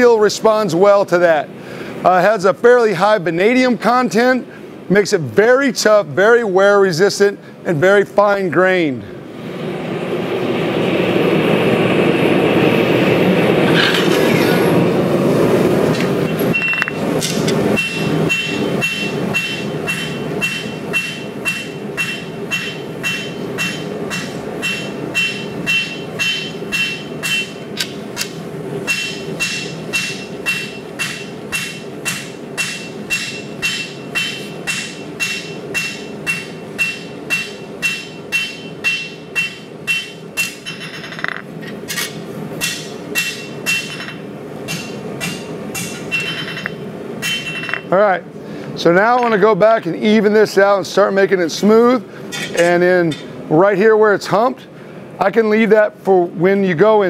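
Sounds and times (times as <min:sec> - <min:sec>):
gas forge burner roaring: 0:08.8 - 0:53.6
hammer striking steel on anvil: 0:16.3 - 0:47.9, 0:52.3 - 0:53.3.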